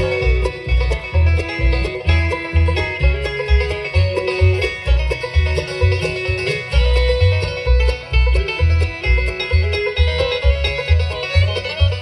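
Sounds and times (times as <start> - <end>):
acoustic guitar picking: 0.0 - 12.0
banjo picking: 0.0 - 12.0
fiddle bowing long notes: 0.0 - 12.0
mandolin picking: 0.0 - 12.0
upright bass: 0.0 - 12.0.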